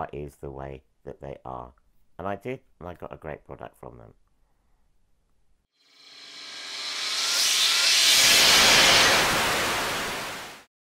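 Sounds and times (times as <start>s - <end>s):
hissing whoosh: 6.0s - 10.7s.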